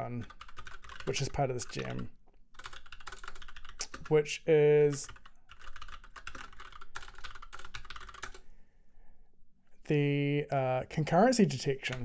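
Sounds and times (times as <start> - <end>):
fast typing on keyboard: 0.2 - 4.2, 4.8 - 8.4.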